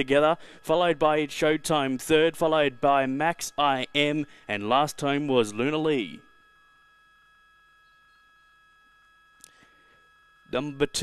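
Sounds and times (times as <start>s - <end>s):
faint steady hum: 0.0s - 11.0s
thin tones: 0.0s - 11.0s.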